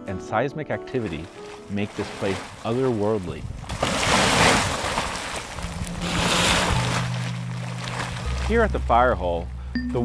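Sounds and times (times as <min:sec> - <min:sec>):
background music with low notes: 0:00.0 - 0:03.4, 0:05.6 - 0:10.0
hot spring water churning: 0:01.0 - 0:08.9.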